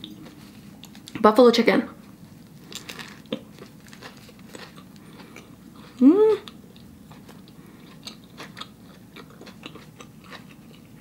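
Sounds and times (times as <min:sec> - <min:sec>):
person chewing: 0:02.5 - 0:11.0.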